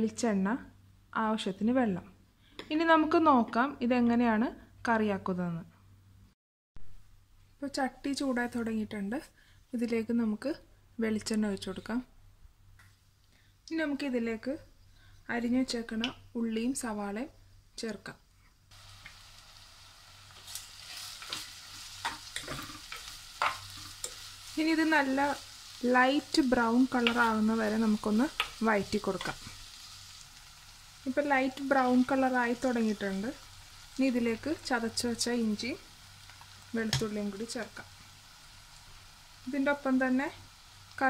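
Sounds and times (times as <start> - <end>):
onions sizzling in hot oil: 18.7 - 41.0.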